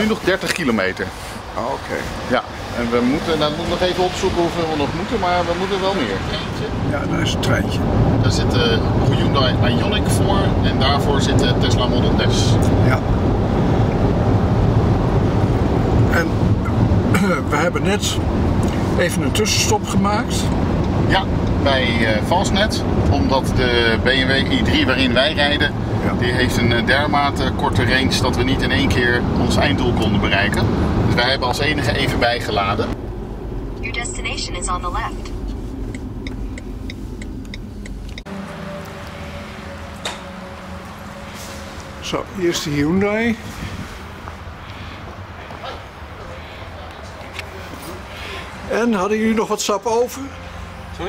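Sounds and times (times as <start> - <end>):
car interior road and wind noise: 0.0 - 51.0
low tyre rumble: 0.0 - 51.0.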